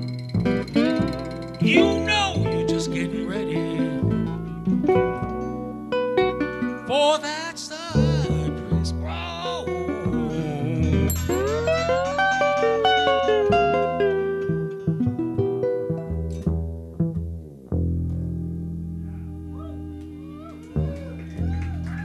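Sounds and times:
blues band playing: 0.4 - 5.7, 6.5 - 14.1.

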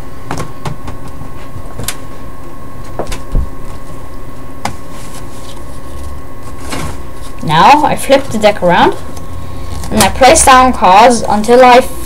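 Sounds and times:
steady hum with high tone: 0.0 - 12.0.

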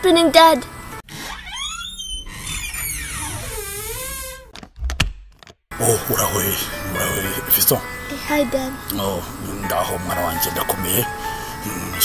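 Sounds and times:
door creaking open: 1.0 - 5.7.

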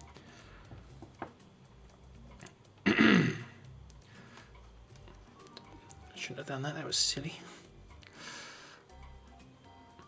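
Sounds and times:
man clearing his throat: 2.8 - 3.6.

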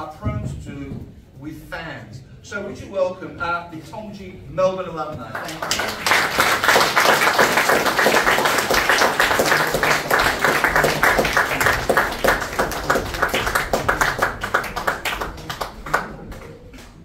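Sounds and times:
audience applauding: 5.4 - 17.0.

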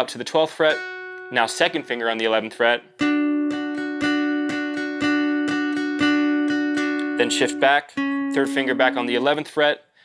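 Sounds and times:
acoustic guitar picking: 0.7 - 9.4.

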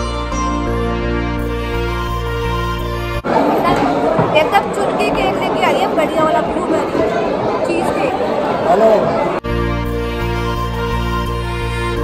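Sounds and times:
crowd chatter: 1.7 - 12.0.

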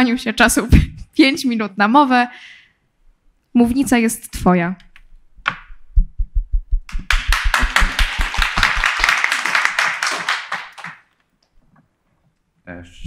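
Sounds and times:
audience applause: 7.0 - 11.1.

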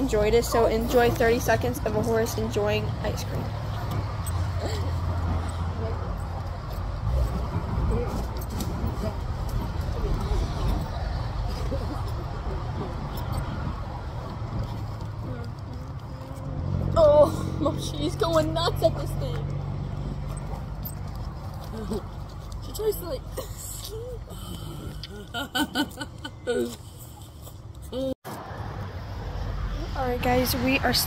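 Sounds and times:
people talking: 0.0 - 3.5, 17.0 - 19.4, 22.7 - 26.8, 29.8 - 31.0
low rumble of road traffic: 0.0 - 31.0.

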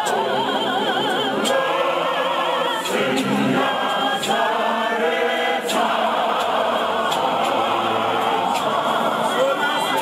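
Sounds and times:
male choir singing a hymn: 0.0 - 10.0.

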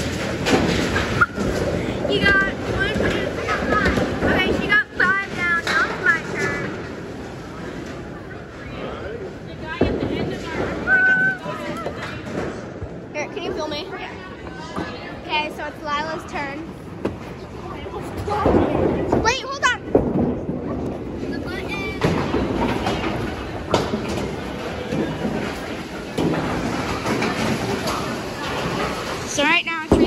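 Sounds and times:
bowling alley noise: 0.0 - 30.0
children squealing: 10.9 - 11.6.

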